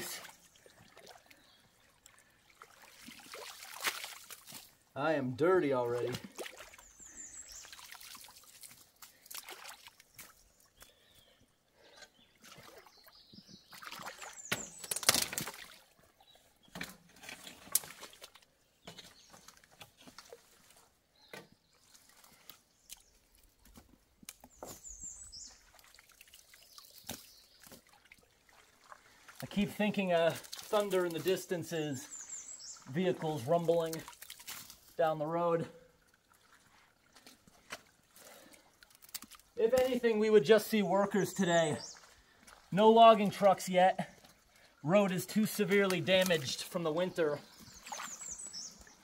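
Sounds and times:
water sloshing around boots: 0.0 - 4.9, 5.6 - 35.2, 35.8 - 49.0.

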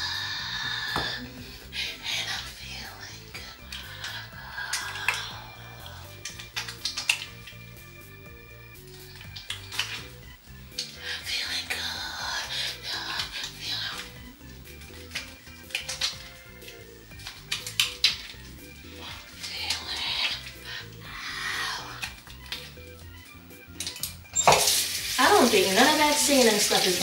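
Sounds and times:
background music: 0.0 - 27.0
tap water running into basin: 6.0 - 8.1, 12.7 - 20.6, 23.8 - 27.0
hands rubbing cleanser on skin: 6.1 - 8.2, 8.8 - 10.9, 13.0 - 20.8
woman's voice: 25.2 - 27.0.

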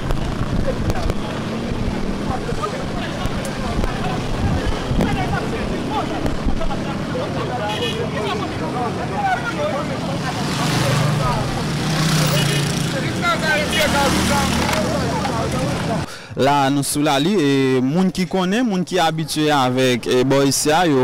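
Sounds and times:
motorcycle engines passing: 0.0 - 16.1.

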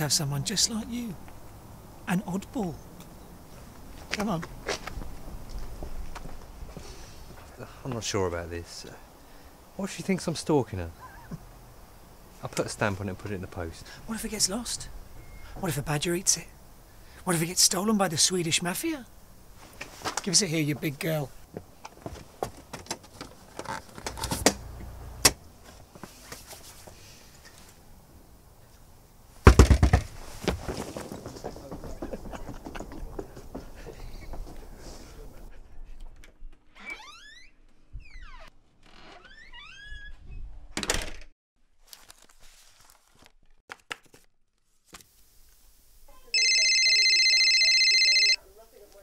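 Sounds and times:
phone ringing trill: 46.4 - 48.4.

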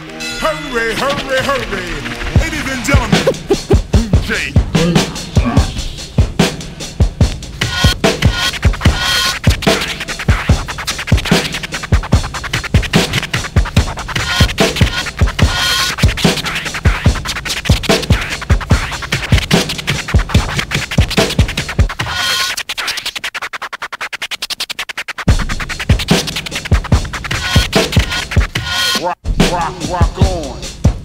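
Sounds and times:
fast drum beat: 2.4 - 5.6, 6.2 - 22.1, 25.2 - 31.0
hip hop track: 2.5 - 5.9, 27.1 - 31.0
turntable scratching: 2.6 - 3.8, 7.7 - 30.5.

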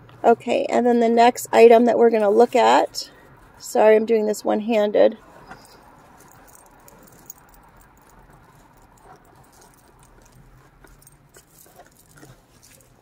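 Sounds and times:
rustling of crinkle paper: 5.2 - 13.0
light clicks of items handled: 5.4 - 13.0.

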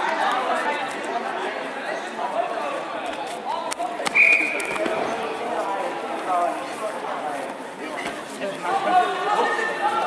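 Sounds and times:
referee's whistle blast: 4.1 - 4.7.

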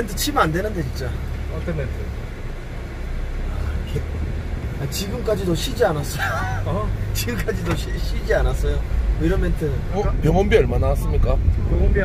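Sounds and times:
van engine and road noise: 0.0 - 12.0.

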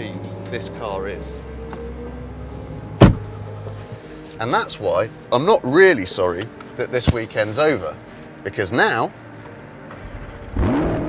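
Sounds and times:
background music: 0.0 - 11.0
car door closing thud: 3.0 - 3.3.

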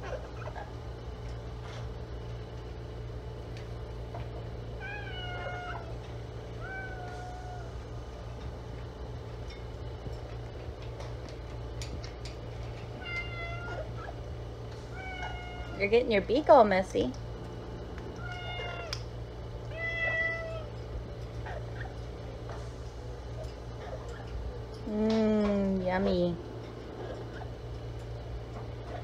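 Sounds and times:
steady low hum: 0.0 - 29.0
parrot calls: 4.8 - 6.0, 15.0 - 15.8.

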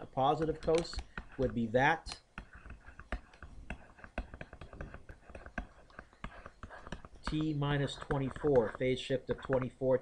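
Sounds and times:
stylus tapping on tablet screen: 0.0 - 10.0.

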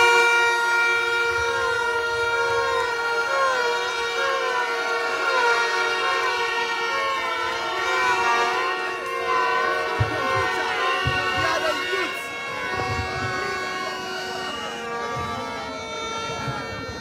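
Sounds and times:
horns held at steady pitches: 0.0 - 17.0
warbling siren-like tone: 1.0 - 17.0.

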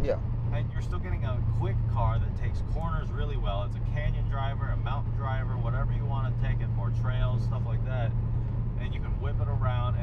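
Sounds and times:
car engine and exhaust drone: 0.0 - 10.0.

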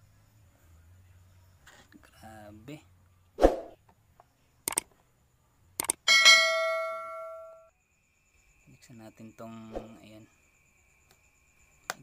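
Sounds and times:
mouse clicks: 4.7 - 4.9, 5.8 - 6.0
bell ding: 6.1 - 7.7.

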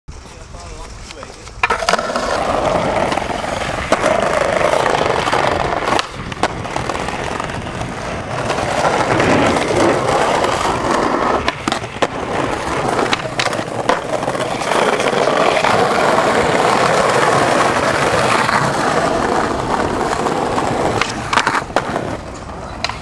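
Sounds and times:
skateboard wheels rolling on bricks: 0.1 - 23.0
skateboard clacks: 0.2 - 23.0.

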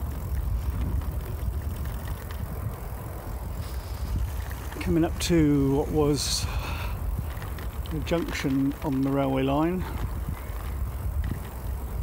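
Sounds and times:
bicycle tyres rumbling on tarmac: 0.0 - 12.0.

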